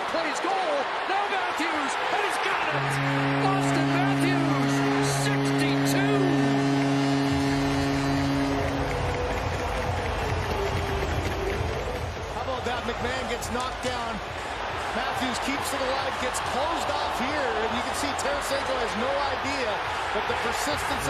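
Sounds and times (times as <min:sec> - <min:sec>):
crowd cheering: 0:00.0 - 0:21.0
arena goal horn: 0:01.5 - 0:11.6, 0:15.8 - 0:21.0.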